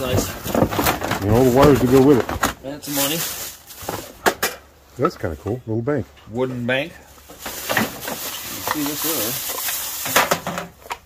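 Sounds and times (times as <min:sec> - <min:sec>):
plastic bag rustling: 0:00.0 - 0:04.3, 0:06.7 - 0:10.9.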